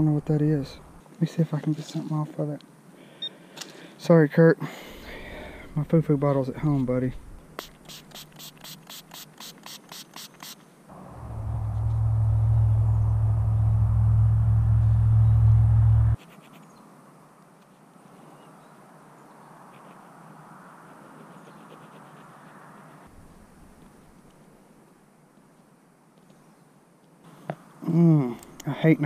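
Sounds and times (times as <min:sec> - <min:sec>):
spray bottle squirting: 0:07.6 - 0:10.6
loud low rumble: 0:10.9 - 0:16.2.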